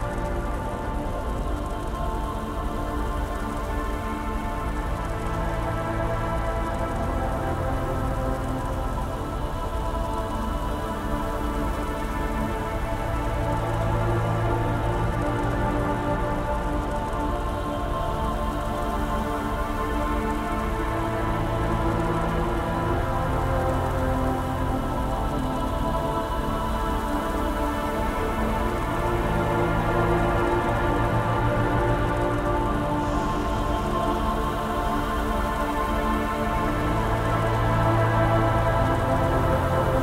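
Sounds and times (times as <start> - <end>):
dark ambient synth drones: 0.0 - 40.0
steady industrial hiss: 0.0 - 40.0.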